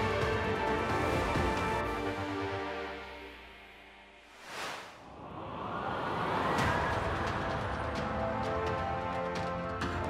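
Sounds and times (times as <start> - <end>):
background music sustained notes: 0.0 - 10.0
rising whoosh: 4.3 - 7.2.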